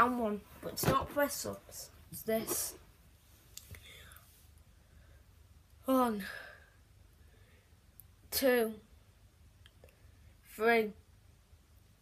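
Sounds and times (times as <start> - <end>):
low room hum: 0.0 - 12.0
soft breathy sound: 2.6 - 7.9.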